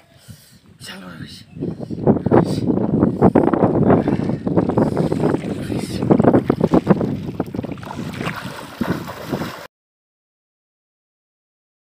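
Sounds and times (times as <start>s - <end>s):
wind buffeting microphone: 0.2s - 9.7s
water splashing: 4.6s - 9.7s.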